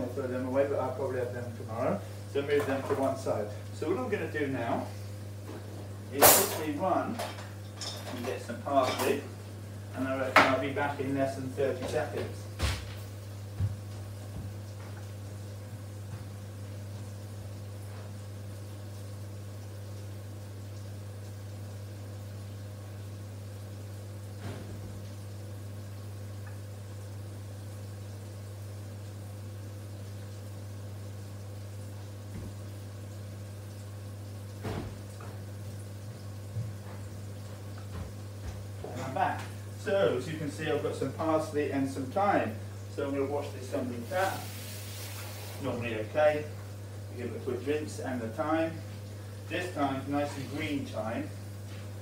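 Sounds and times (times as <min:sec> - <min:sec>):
electric oven humming: 0:00.0 - 0:52.0.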